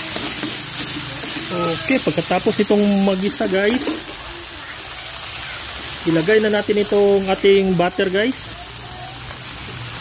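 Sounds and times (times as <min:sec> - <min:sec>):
meat sizzling in hot oil: 0:00.0 - 0:10.0.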